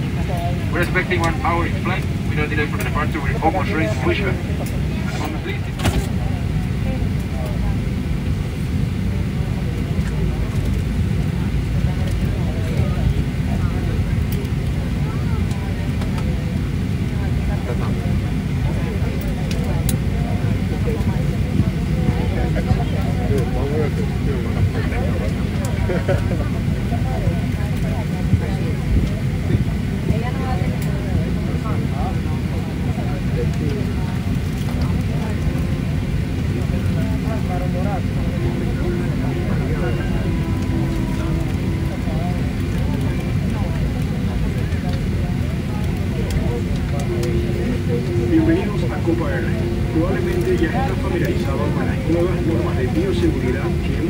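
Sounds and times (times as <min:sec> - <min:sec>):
aircraft cabin rumble: 0:00.0 - 0:54.0
passengers talking faintly: 0:00.0 - 0:54.0
steady hum: 0:00.0 - 0:54.0.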